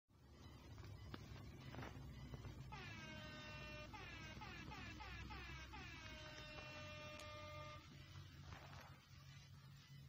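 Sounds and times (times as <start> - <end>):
faint electronic tone: 0.1 - 10.0.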